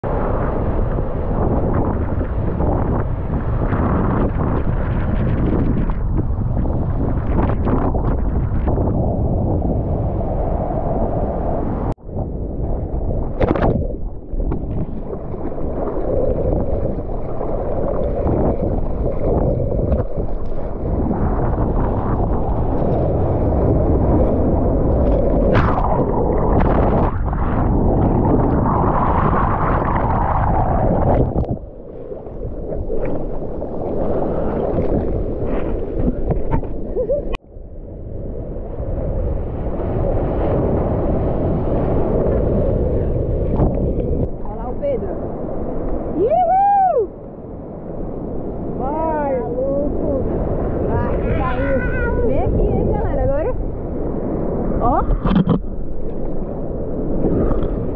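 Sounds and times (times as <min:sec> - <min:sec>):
seawater sloshing and splashing: 0:12.8 - 0:37.4.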